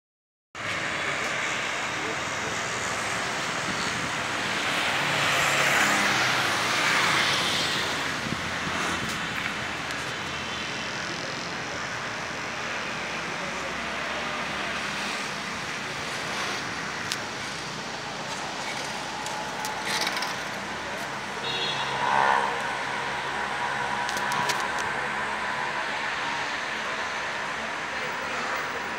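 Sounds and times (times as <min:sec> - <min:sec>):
street noise: 0:00.6 - 0:28.9
tyres and engine rushing: 0:00.6 - 0:28.9.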